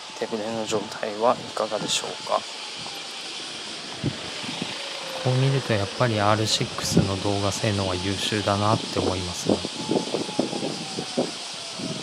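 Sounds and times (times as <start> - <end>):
outdoor street noise: 0.0 - 12.0.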